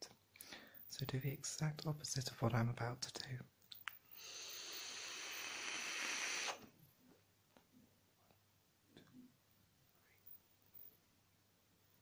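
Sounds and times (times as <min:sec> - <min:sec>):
e-cigarette draw hiss: 0:04.1 - 0:06.7.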